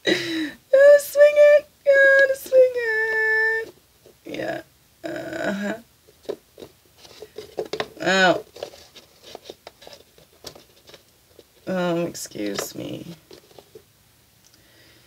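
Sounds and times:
woman's wordless vocal sounds: 4.3s - 5.8s
cards clicking and scraping: 6.2s - 11.7s.

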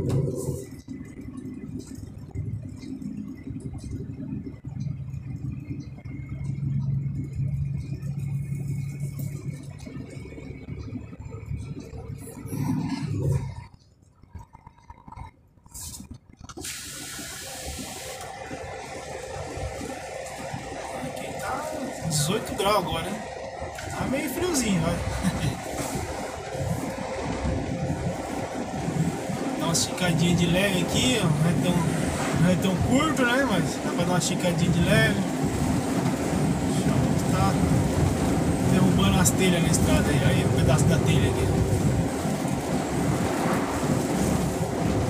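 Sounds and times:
truck engine and road noise: 0.0s - 45.0s.

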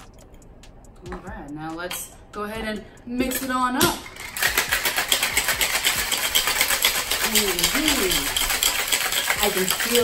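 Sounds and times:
cocktail shaker rattling: 4.0s - 10.0s.

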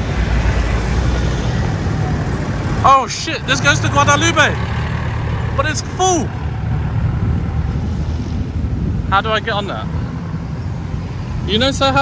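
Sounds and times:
city street traffic rumble: 0.0s - 12.0s
vehicle engine moving off: 0.0s - 12.0s.

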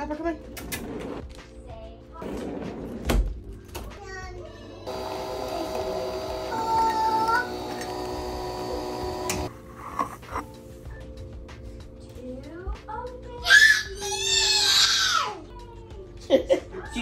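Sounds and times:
coffee machine brewing hum: 4.9s - 10.4s.

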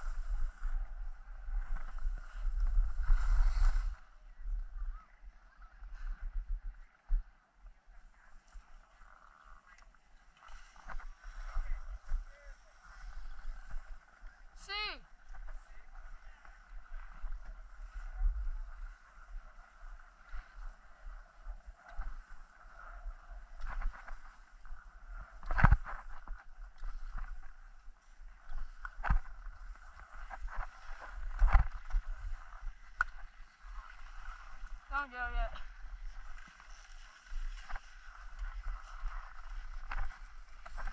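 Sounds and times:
skis scraping over snow: 0.0s - 4.6s, 7.7s - 40.9s
wind rumbling on microphone: 0.0s - 40.9s.

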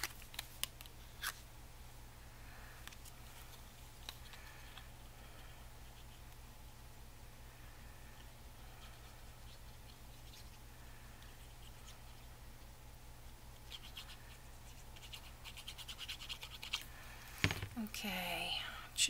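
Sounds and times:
glue nozzle scratching paper: 13.6s - 16.8s.

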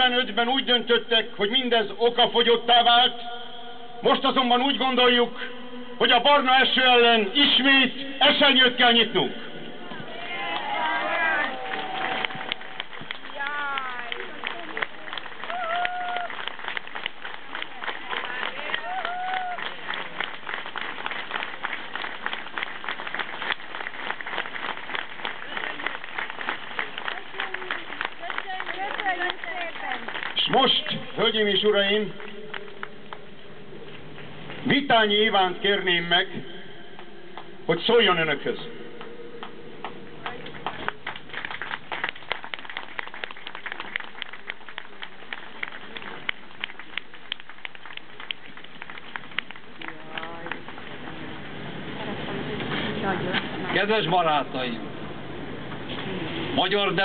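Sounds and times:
crowd applauding: 10.0s - 33.3s, 39.4s - 52.0s.

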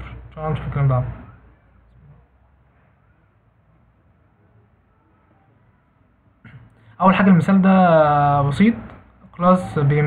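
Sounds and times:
man speaking: 0.0s - 1.3s, 7.0s - 10.0s.

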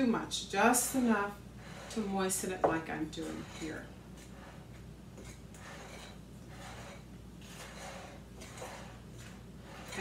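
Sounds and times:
utensil scraping dough in glass bowl: 0.0s - 10.0s.

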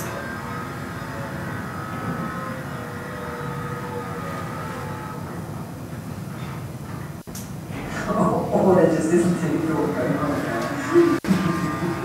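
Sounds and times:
motor-like hum: 0.0s - 12.0s.

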